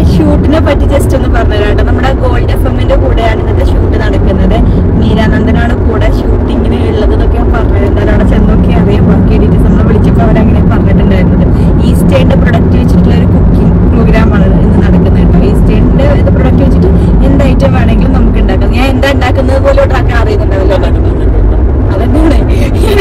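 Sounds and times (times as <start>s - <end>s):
car cabin road and engine noise: 0.0s - 23.0s
person talking: 0.0s - 23.0s.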